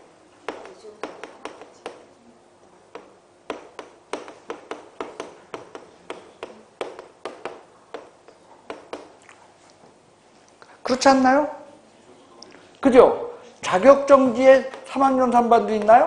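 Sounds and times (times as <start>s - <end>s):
chalk tapping on chalkboard: 0.4s - 2.2s, 2.9s - 9.2s, 15.6s - 16.0s.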